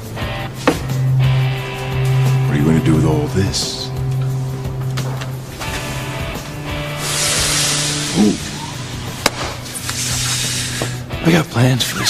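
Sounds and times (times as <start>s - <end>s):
low drone underscore music: 0.0s - 12.0s
rushing hiss: 6.7s - 11.1s.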